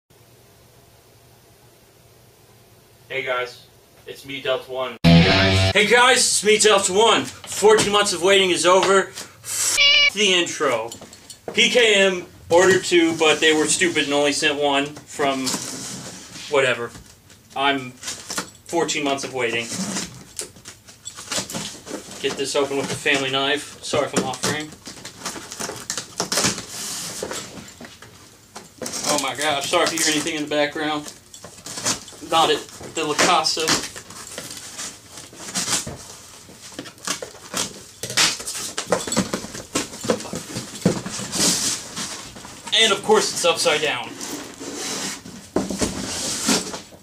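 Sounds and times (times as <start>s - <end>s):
cardboard box rustling and scraping: 24.8s - 27.8s, 31.5s - 47.0s
hands scraping cardboard: 43.1s - 47.0s.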